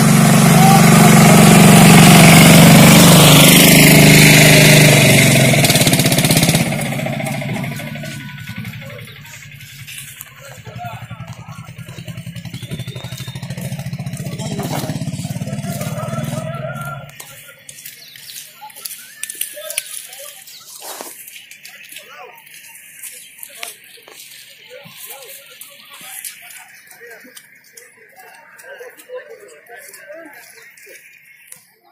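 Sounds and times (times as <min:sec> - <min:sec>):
vehicle engine running: 0:00.0 - 0:18.2
faint street noise: 0:00.0 - 0:31.9
voices of passers-by: 0:00.0 - 0:31.9.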